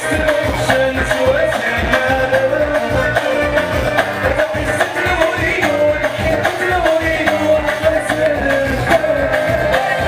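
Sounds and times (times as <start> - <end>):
bending melody line: 0.0 - 10.0
live band music: 0.0 - 10.0.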